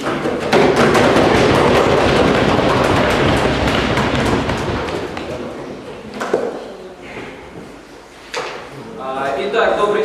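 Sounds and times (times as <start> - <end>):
audience applauding: 0.8 - 5.5.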